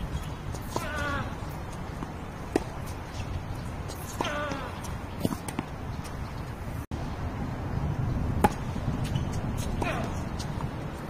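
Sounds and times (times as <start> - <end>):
tennis ball impact: 0.5 - 3.2, 3.8 - 6.2, 8.4 - 10.2.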